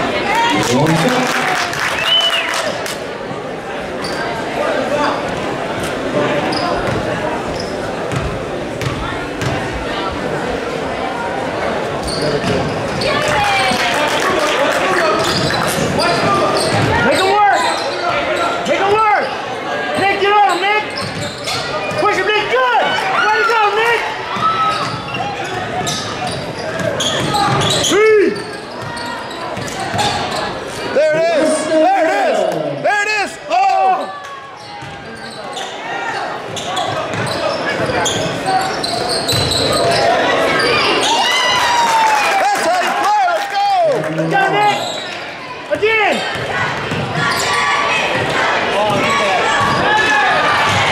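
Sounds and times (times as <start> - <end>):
echoing shouts: 21.6 - 26.0, 26.8 - 50.9.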